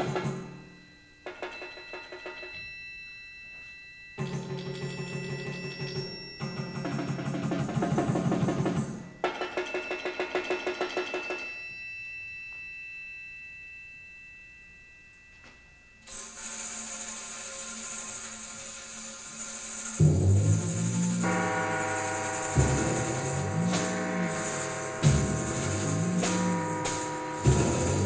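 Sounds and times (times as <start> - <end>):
high ringing tones: 0.0 - 28.0
high jingling shimmer: 0.6 - 7.2, 9.0 - 28.0
percussion roll: 16.1 - 28.0
loud low drum strokes: 20.0 - 28.0.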